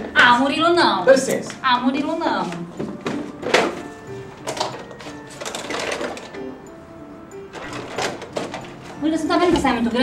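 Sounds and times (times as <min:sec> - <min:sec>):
music with plucked notes: 0:00.0 - 0:10.0
tools clattering in a toolbox: 0:04.4 - 0:06.4.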